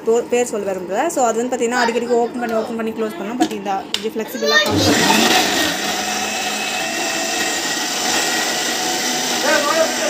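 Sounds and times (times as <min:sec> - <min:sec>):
mixer grinder running: 0:00.0 - 0:10.0.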